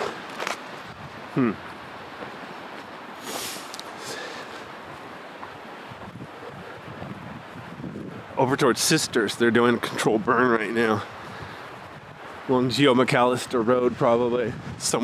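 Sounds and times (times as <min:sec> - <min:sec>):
footsteps on dirt trail: 0:00.0 - 0:08.3
wind hiss: 0:00.0 - 0:15.0
high rustle: 0:03.2 - 0:04.7.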